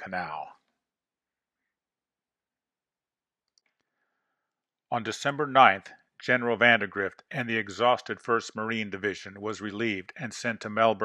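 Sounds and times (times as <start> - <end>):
man speaking: 0.0 - 0.6, 4.9 - 11.0.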